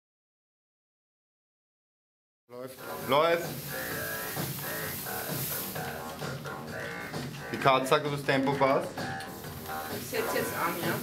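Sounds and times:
repeating synthesizer riff: 2.8s - 8.1s.

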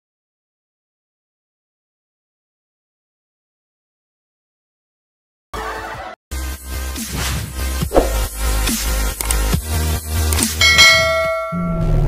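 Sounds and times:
bell-like ding: 10.6s - 12.0s.

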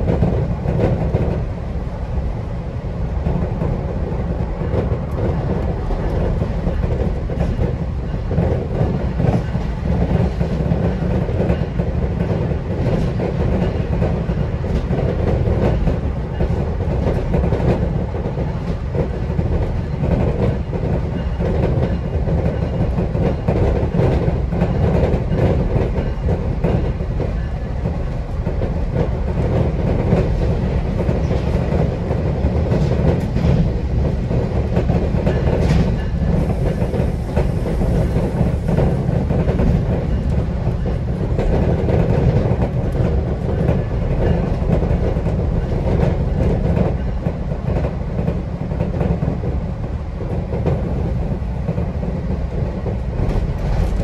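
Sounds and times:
train coach rumbling on track: 0.0s - 54.0s.

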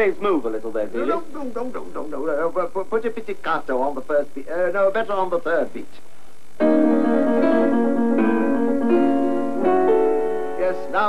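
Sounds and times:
piano playing slow chords: 6.6s - 11.0s.

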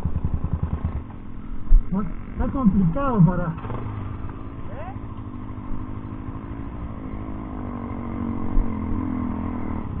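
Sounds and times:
dirt bike engines idling: 0.0s - 10.0s
dirt bike riding up slope: 0.0s - 10.0s.

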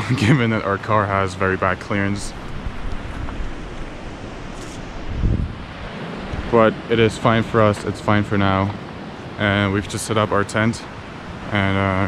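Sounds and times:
river rushing: 1.1s - 12.0s
wind buffeting microphone: 1.6s - 10.0s.

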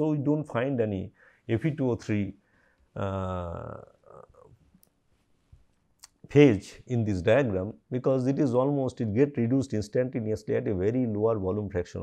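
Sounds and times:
mouth clicks: 6.0s - 6.3s.

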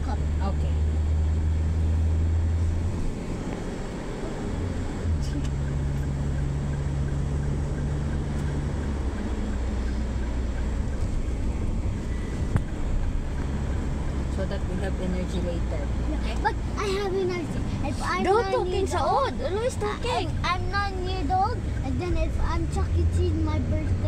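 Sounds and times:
car engine and road drone: 0.0s - 24.0s.

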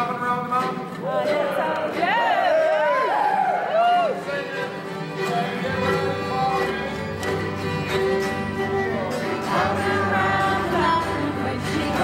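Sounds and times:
bluegrass string ensemble: 0.0s - 12.0s
fiddle notes: 3.8s - 12.0s
guitar strumming: 4.2s - 12.0s.

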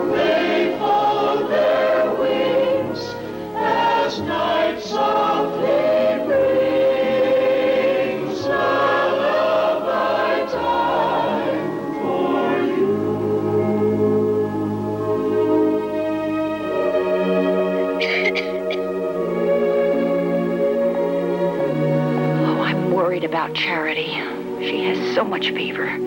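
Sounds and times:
choir singing with accompaniment: 0.0s - 22.9s.

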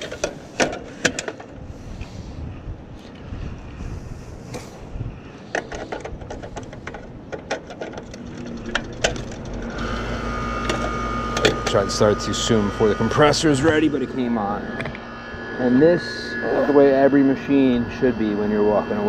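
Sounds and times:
condenser unit humming: 0.0s - 19.0s
thin steady whine: 0.0s - 19.0s.

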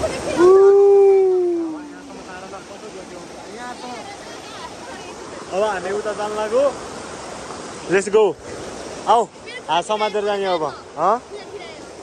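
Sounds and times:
rocky stream rushing: 0.0s - 12.0s
long held vocal call: 0.3s - 2.2s.

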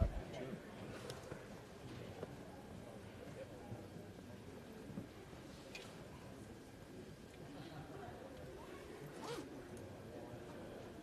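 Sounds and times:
murmur of a crowded room: 0.0s - 11.0s.

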